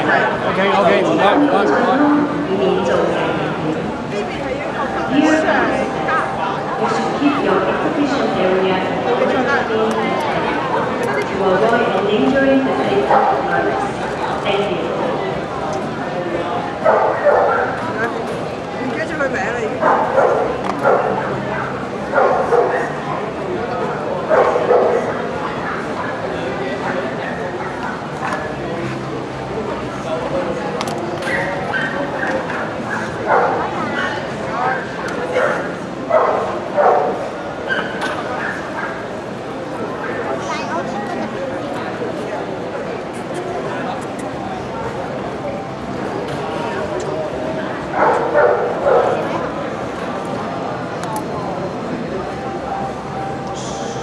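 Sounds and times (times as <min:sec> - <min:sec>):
crowd chatter: 0:00.0 - 0:54.0
dog barking: 0:16.8 - 0:17.8, 0:19.8 - 0:21.2, 0:22.2 - 0:22.9, 0:24.3 - 0:25.1, 0:31.3 - 0:34.1, 0:35.4 - 0:39.0, 0:48.0 - 0:49.2.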